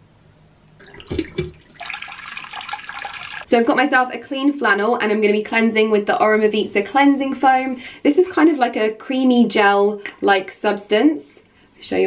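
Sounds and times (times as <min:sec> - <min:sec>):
water running into sink: 0:00.8 - 0:03.5.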